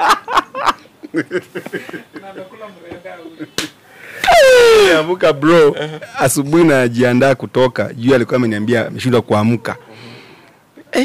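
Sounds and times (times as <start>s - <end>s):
man laughing heartily: 0.0s - 2.6s, 5.6s - 6.2s.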